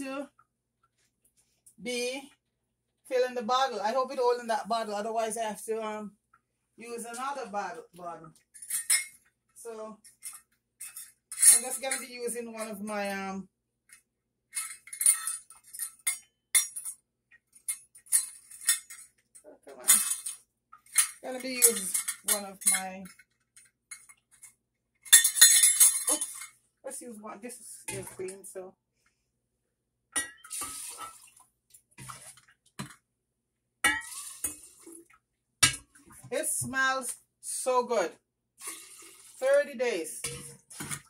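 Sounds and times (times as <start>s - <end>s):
utensils and glassware clinking: 8.6s - 9.2s, 10.1s - 12.1s, 14.6s - 17.0s, 19.8s - 23.2s, 25.1s - 26.6s.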